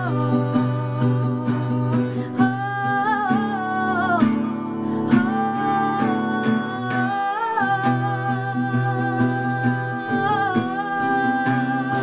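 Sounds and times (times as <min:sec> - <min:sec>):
acoustic guitar strumming: 0:00.0 - 0:12.0
woman singing a long note: 0:05.0 - 0:12.0.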